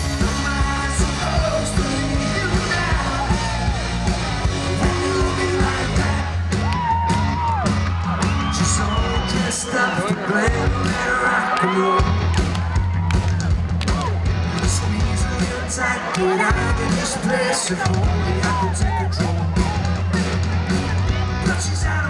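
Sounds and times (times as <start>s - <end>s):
bass line: 0.0s - 22.0s
crowd yelling and whooping: 0.0s - 22.0s
drums: 0.0s - 22.0s
pop band with singing: 0.0s - 22.0s.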